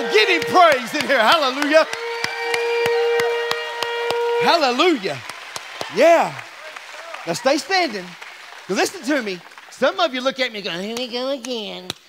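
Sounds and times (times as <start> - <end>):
congregation hand claps: 0.0 - 12.0.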